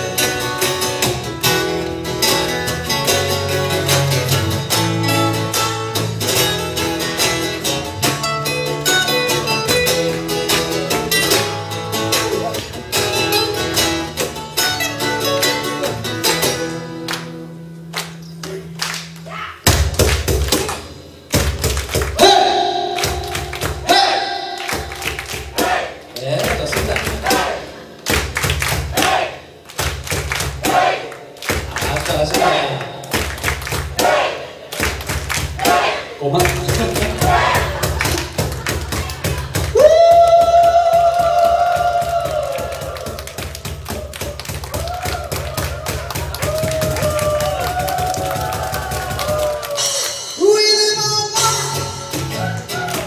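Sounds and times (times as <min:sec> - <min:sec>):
bass guitar notes: 0:00.0 - 0:53.0
percussive thumps: 0:19.7 - 0:22.3
person singing into microphone: 0:50.4 - 0:52.2.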